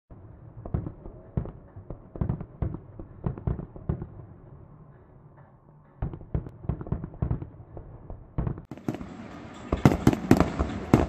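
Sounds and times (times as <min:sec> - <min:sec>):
fireworks bursting bangs: 0:00.1 - 0:04.5, 0:06.0 - 0:11.0.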